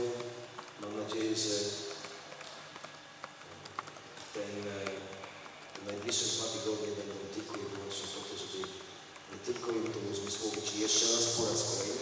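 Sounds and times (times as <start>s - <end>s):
faint clicks and taps: 0.0s - 12.0s.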